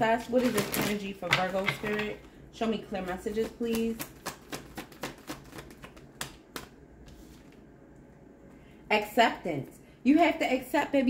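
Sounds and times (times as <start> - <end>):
cards being shuffled: 3.2 - 7.7.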